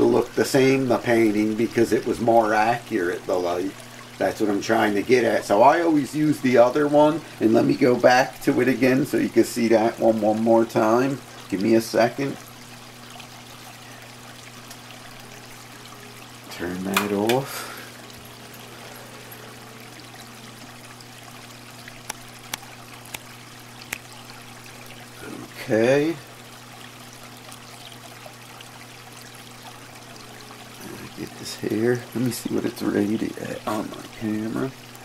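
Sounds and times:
constant low hum: 0.0s - 35.0s
water trickling and splashing: 0.0s - 35.0s.

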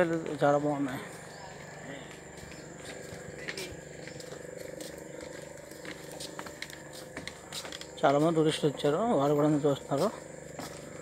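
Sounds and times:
faint voices: 0.0s - 10.4s
footsteps on wooden boards: 1.5s - 8.4s, 10.0s - 11.0s.

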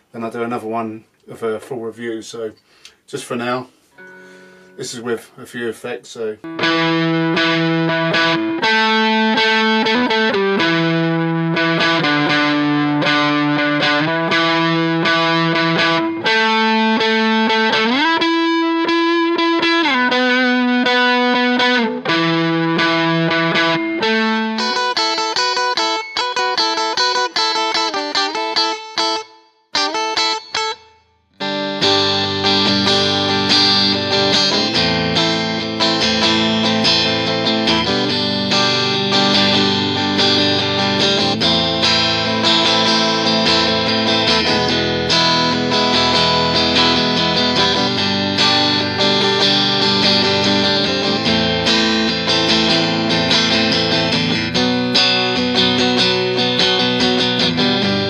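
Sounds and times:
electric guitar through effects: 3.9s - 5.2s, 6.4s - 58.0s.

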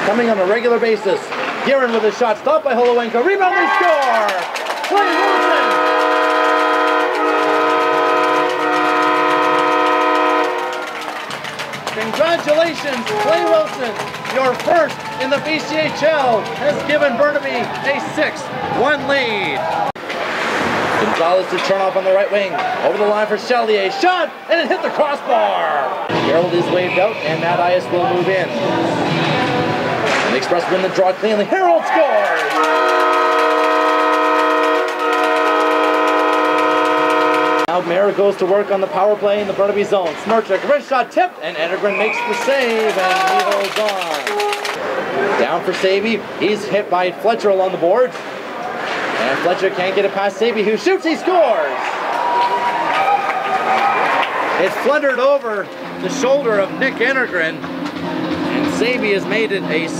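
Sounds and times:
arena goal horn: 4.9s - 11.2s, 13.1s - 13.8s, 32.4s - 37.8s.

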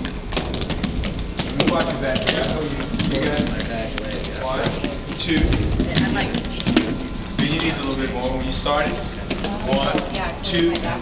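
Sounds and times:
roller skates rolling on wooden floor: 0.0s - 7.8s
voices: 1.4s - 11.0s.

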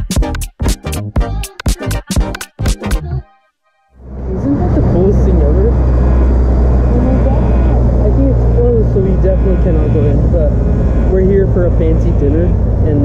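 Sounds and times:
low rumble of street noise: 4.0s - 13.0s
muffled talking: 4.2s - 13.0s.

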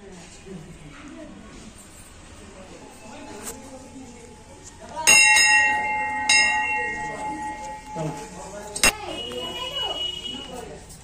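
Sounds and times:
temple bell ringing: 5.0s - 9.2s.

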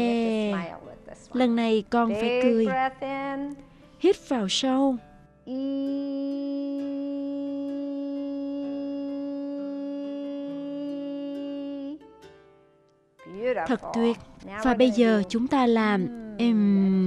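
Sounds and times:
woman singing a held vowel: 5.5s - 12.0s.

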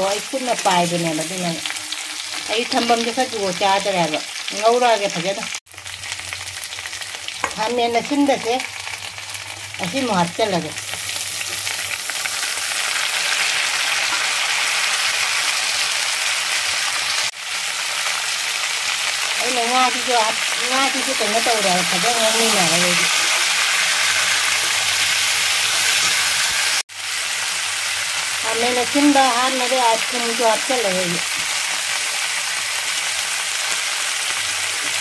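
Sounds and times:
vegetables sizzling in hot oil: 0.0s - 35.0s.

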